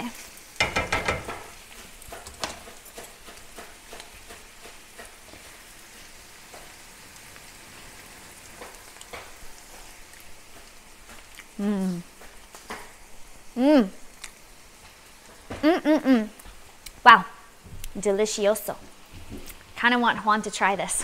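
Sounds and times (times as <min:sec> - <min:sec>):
food sizzling in a pan: 0:00.0 - 0:21.0.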